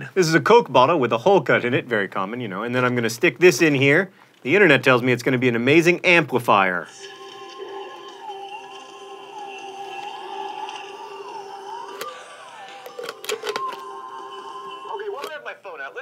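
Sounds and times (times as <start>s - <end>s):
thin music from small speaker: 6.9s - 16.0s
clicks: 12.8s - 13.9s.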